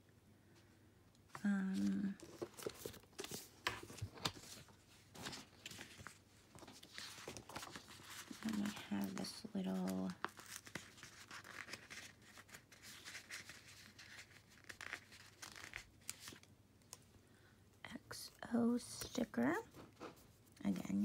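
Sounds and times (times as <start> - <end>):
paper sticker sheets rustling: 1.7 - 16.4.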